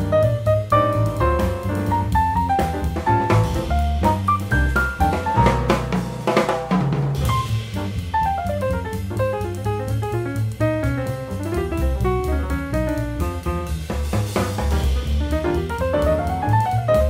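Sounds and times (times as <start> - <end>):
bass line: 0.0 - 17.0
drum kit: 0.0 - 17.0
quick runs of notes: 0.1 - 13.8.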